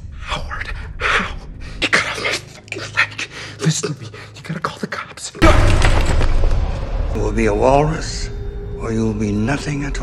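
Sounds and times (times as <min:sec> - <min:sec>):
man whispering frantically: 0:00.2 - 0:05.4.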